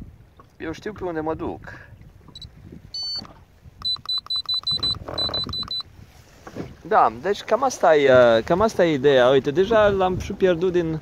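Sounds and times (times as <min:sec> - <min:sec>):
device key beeps: 0:02.4 - 0:05.9.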